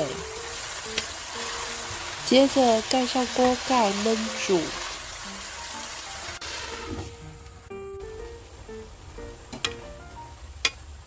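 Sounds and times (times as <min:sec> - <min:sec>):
vegetables sizzling in a frying pan: 0:00.0 - 0:07.4
light instrumental music: 0:00.0 - 0:11.0.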